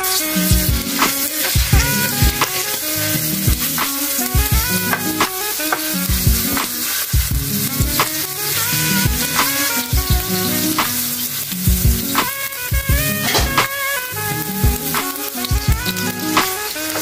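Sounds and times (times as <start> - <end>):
background music: 0.0 - 17.0
meat sizzling in oil: 0.0 - 17.0.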